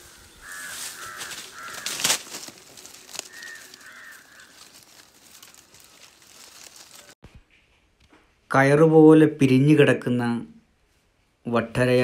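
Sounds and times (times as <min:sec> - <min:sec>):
crows cawing: 0:00.0 - 0:07.1
crackling rustle of leaves: 0:00.0 - 0:07.2.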